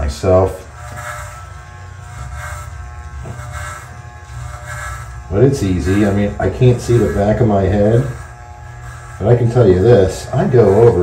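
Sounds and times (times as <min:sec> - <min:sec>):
hair trimmer buzzing: 0:00.0 - 0:11.0
trimmer blade rasping on stubble: 0:00.2 - 0:11.0.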